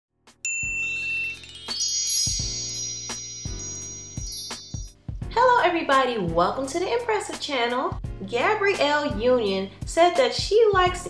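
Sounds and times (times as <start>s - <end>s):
tinkling chime notes: 0.4s - 5.0s
bright bell-like ding: 0.5s - 5.0s
shimmering chime hit: 0.5s - 5.0s.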